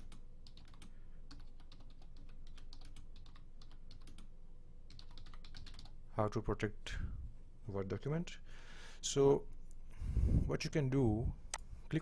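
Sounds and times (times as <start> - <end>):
computer keyboard typing: 0.0 - 4.3, 4.9 - 6.0.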